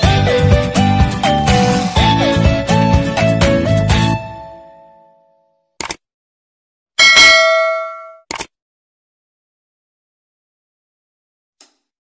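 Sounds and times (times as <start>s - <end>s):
bright bell ding: 7.0s - 8.2s.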